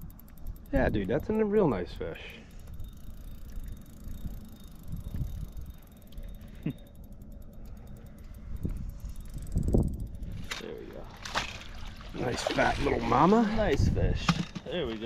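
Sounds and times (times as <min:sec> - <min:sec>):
fishing reel ticking: 0:00.0 - 0:15.0.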